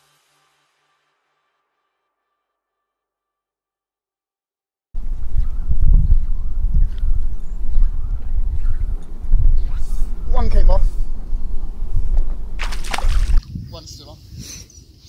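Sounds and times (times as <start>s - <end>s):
wind buffeting microphone: 5.0s - 14.6s.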